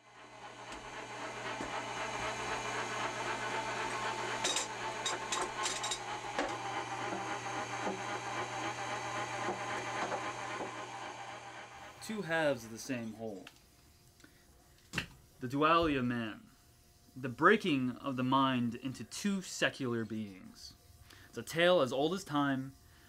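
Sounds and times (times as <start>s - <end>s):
meat grinder motor humming: 0.0s - 12.0s.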